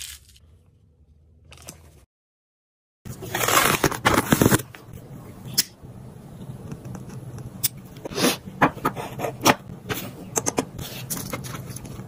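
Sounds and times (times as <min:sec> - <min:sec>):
low steady hum: 0:03.2 - 0:12.0.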